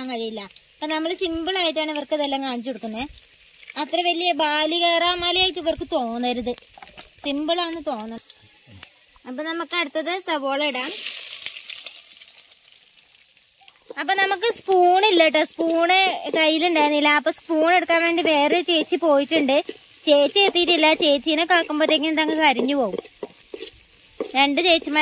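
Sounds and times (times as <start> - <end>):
onions sizzling in hot oil: 0.0 - 25.0.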